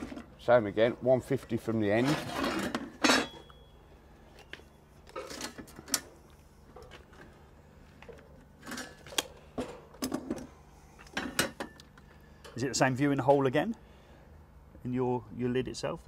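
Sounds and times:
metal clank: 2.4s - 3.5s.

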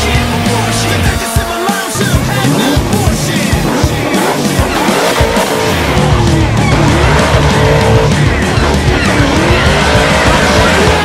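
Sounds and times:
car engine revving: 0.0s - 11.0s
loud rock song: 0.0s - 11.0s
tyres squealing: 0.0s - 11.0s.

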